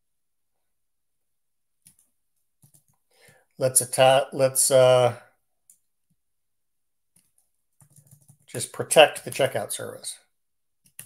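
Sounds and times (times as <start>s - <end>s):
man saying uh: 3.6s - 5.2s.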